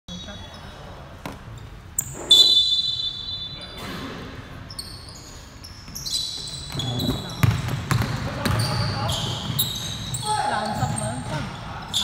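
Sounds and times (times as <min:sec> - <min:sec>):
shoe squeaks: 0:01.6 - 0:07.7, 0:08.3 - 0:12.0
referee's whistle blast: 0:02.3 - 0:03.8.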